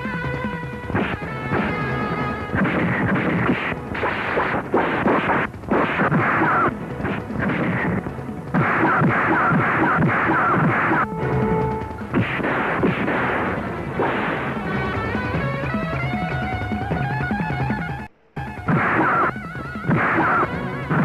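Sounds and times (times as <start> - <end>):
fight hit sound effects: 2.5 - 11.1, 18.7 - 21.0.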